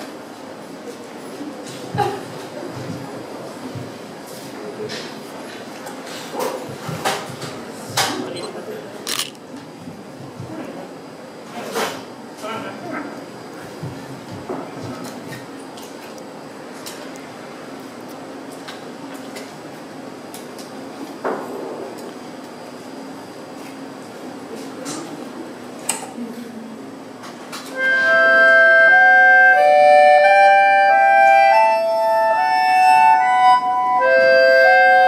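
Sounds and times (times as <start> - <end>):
accordion melody: 27.7 - 35.0.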